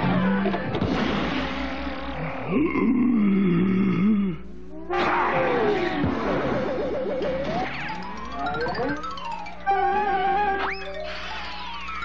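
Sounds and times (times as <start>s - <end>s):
cartoon dog gruff grumbling: 1.9s - 6.0s.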